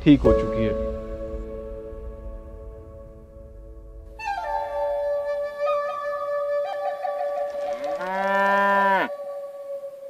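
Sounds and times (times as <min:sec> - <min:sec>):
flute note: 0:00.1 - 0:10.0
cow mooing: 0:07.7 - 0:09.2.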